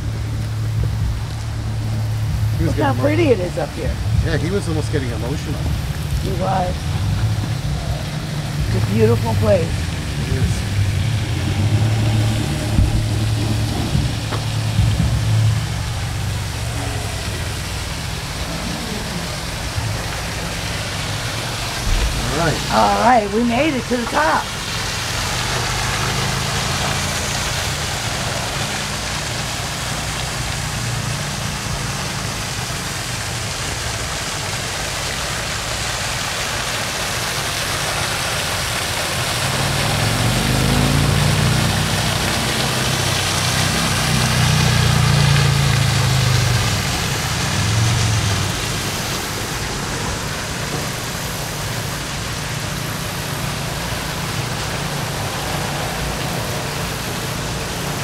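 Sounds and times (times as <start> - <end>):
engine humming: 0.0 - 58.0
steady rushing noise: 0.0 - 58.0.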